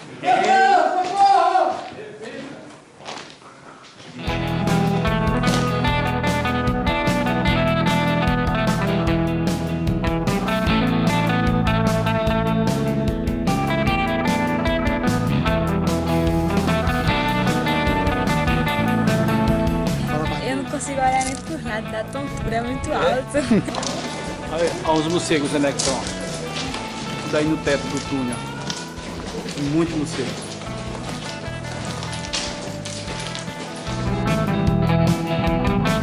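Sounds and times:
guitar music: 4.2s - 36.0s.

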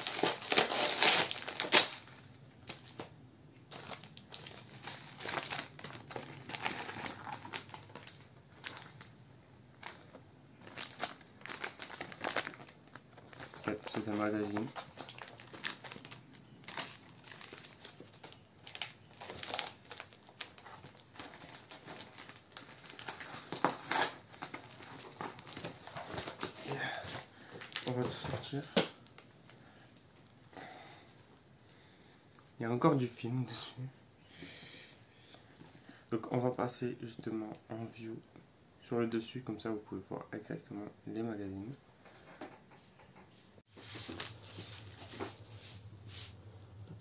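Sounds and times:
paper wrapping crinkling: 0.0s - 29.4s, 43.7s - 47.0s.

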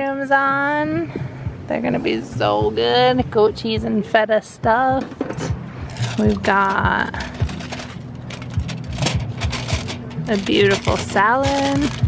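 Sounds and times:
aluminium foil crinkling: 5.9s - 12.0s.

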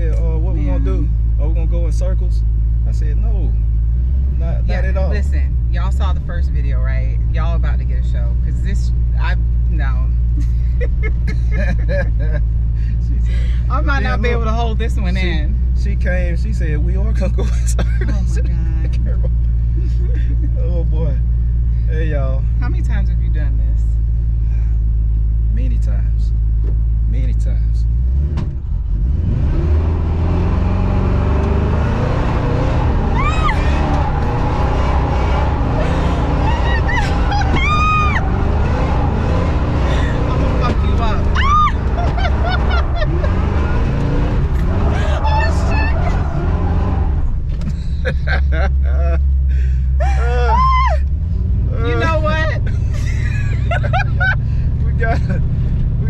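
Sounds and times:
woman laughing: 10.3s - 12.5s, 17.4s - 20.6s, 35.7s - 38.2s, 39.9s - 43.9s, 44.9s - 46.2s, 47.8s - 51.1s, 51.8s - 55.4s
car engine revving high: 27.9s - 49.2s, 50.0s - 56.0s
tyres spinning: 31.5s - 47.8s
woman screaming: 33.0s - 34.0s, 35.5s - 38.5s, 41.2s - 43.5s, 44.9s - 46.6s, 50.0s - 51.1s.

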